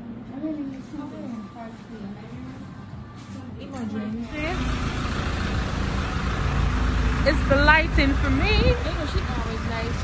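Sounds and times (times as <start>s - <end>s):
road traffic rumble: 4.2s - 10.0s.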